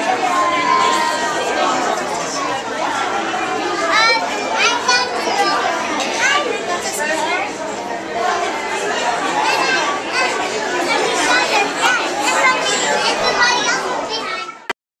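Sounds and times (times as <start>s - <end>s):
chatter of children and adults: 0.0s - 14.8s.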